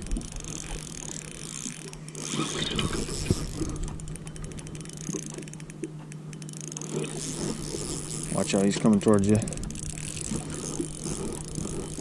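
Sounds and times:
fishing reel cranking: 0:00.0 - 0:12.0
steady low hum: 0:00.0 - 0:12.0.

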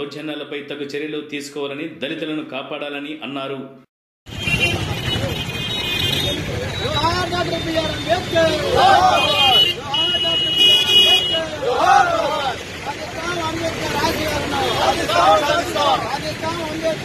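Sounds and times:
vehicle horns: 0:04.3 - 0:12.8, 0:14.0 - 0:16.0
traffic rumble: 0:04.3 - 0:17.0
men's raised voices: 0:06.3 - 0:17.0.

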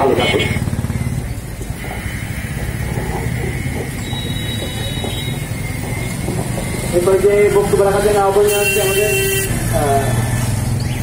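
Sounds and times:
road traffic rumble: 0:00.0 - 0:11.0
vehicle engine running: 0:00.0 - 0:11.0.

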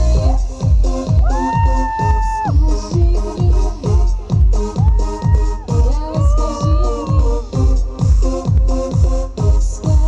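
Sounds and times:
dance-pop music: 0:00.0 - 0:10.0
kick drum: 0:00.0 - 0:10.0.

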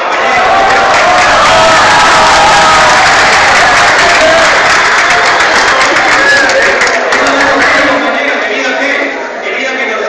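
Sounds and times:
audience applauding and cheering: 0:00.0 - 0:08.6.

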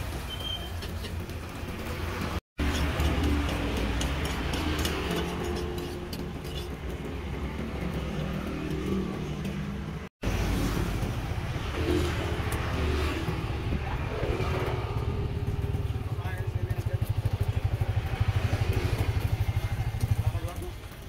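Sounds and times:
vehicle engines rumbling: 0:00.0 - 0:21.0.

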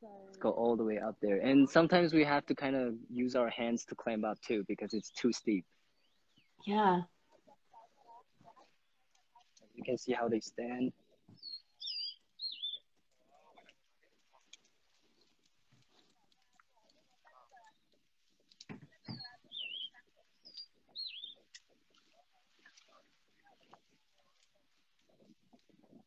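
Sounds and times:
songbird singing: 0:00.0 - 0:26.0.

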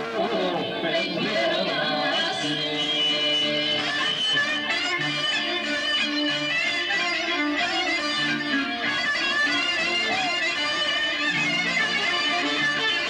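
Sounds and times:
electric guitar: 0:00.0 - 0:13.0
harmonium: 0:00.0 - 0:13.0
clarinet melody: 0:01.8 - 0:13.0.

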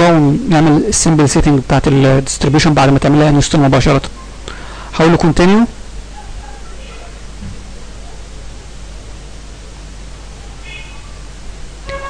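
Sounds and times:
microphone hiss: 0:00.0 - 0:12.0
low hum: 0:08.6 - 0:12.0.

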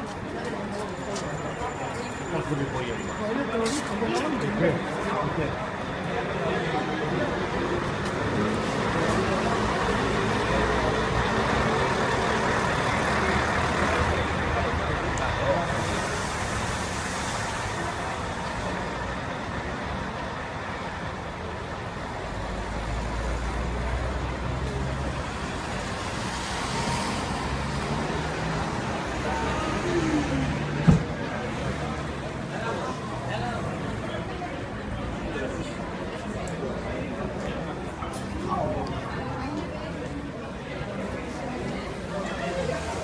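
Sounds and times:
traffic and engine noise: 0:00.0 - 0:43.0
vehicles passing: 0:00.0 - 0:43.0
voices of people: 0:00.0 - 0:43.0.

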